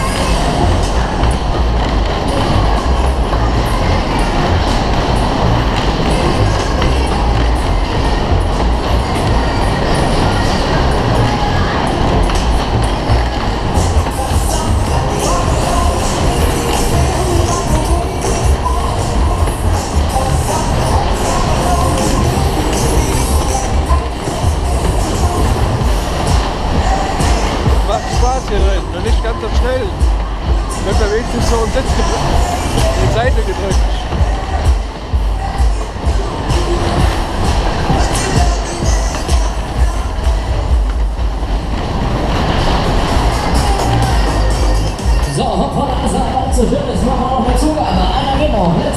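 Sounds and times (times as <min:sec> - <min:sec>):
fairground ride music: 0:00.0 - 0:48.9
wheels rumbling on rails: 0:00.0 - 0:48.9.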